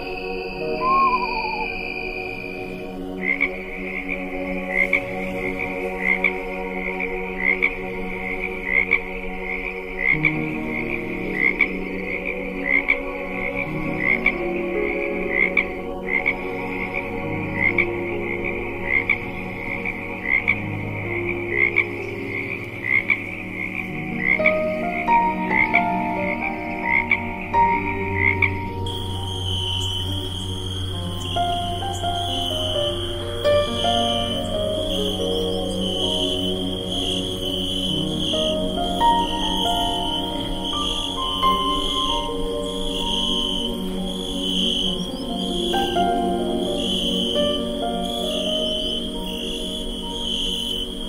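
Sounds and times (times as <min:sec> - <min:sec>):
higher steady sound: 0:00.0 - 0:02.8
ambient music pad: 0:00.0 - 0:51.0
frog croaking: 0:00.0 - 0:51.0.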